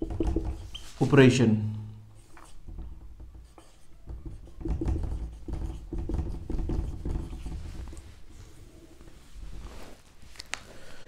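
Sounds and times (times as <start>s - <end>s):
marker writing on whiteboard: 2.1s - 7.6s.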